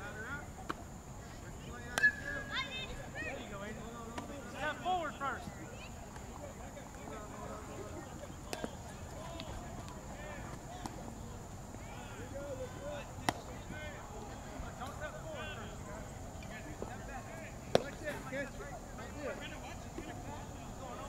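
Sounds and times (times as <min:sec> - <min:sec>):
distant players calling: 0:00.0 - 0:21.0
baseball knocks: 0:08.5 - 0:11.1, 0:13.2 - 0:13.8, 0:17.7 - 0:18.2.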